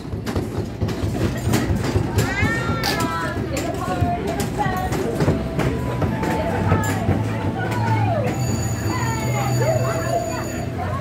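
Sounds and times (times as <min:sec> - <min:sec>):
voices calling and shouting: 0:02.0 - 0:11.0.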